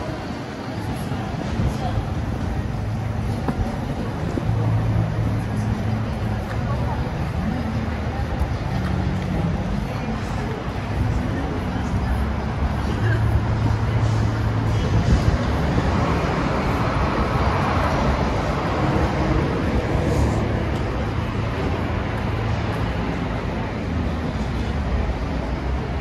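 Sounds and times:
passers-by voices: 0.0s - 26.0s
traffic noise: 0.0s - 26.0s.

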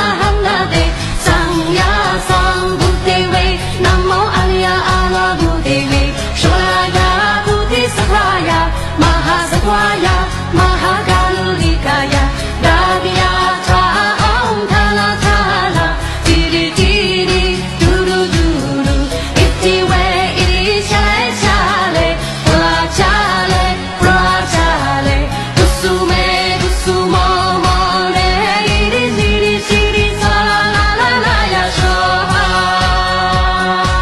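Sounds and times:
backing track with steady beat: 0.0s - 34.0s
woman singing pop-style chant: 0.0s - 34.0s.

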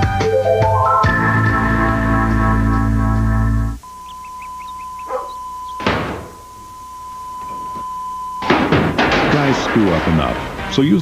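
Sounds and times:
music: 0.0s - 3.8s, 10.0s - 11.0s
high electronic tone: 0.0s - 8.9s
voices: 3.8s - 11.0s.

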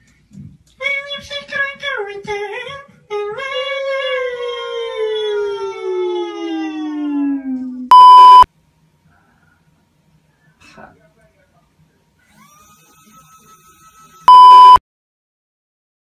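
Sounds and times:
censor bleep tone: 7.9s - 8.5s, 14.3s - 14.8s.

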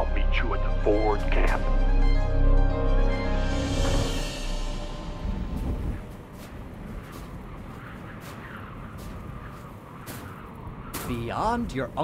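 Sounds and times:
music: 0.0s - 6.2s
low rumbling ambience: 0.0s - 11.7s.

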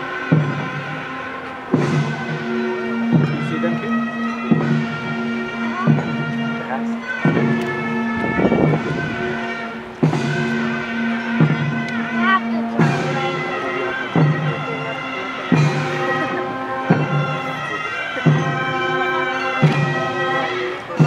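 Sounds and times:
reedy wavering melody: 0.0s - 21.0s
drum or gong strokes: 1.7s - 14.7s.

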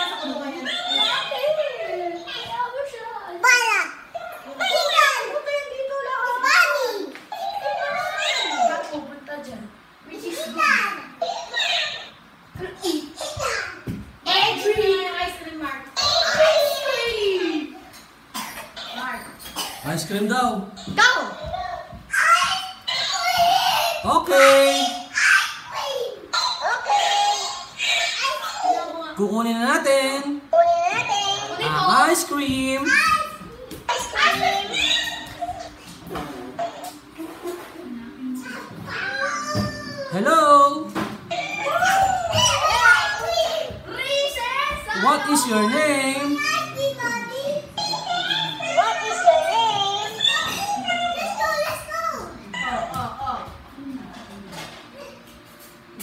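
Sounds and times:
boy coughing: 18.3s - 18.8s, 19.4s - 20.0s.

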